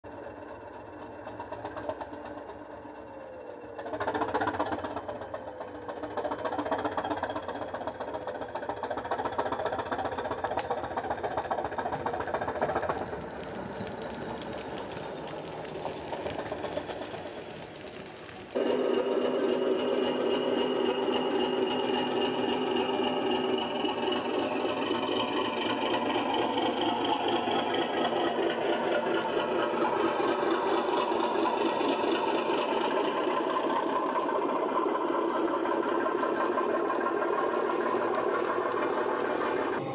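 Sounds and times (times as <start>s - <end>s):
model train diesel engine sound: 0.0s - 39.9s
steady engine running: 0.0s - 39.9s.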